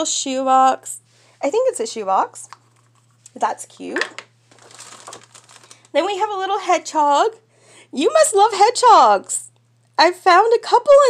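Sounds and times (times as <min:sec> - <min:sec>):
gift bag crinkling: 0:04.2 - 0:06.3.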